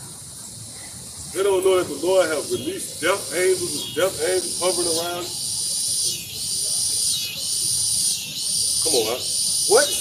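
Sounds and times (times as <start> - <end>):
insects chirring in chorus: 0.4 - 10.0.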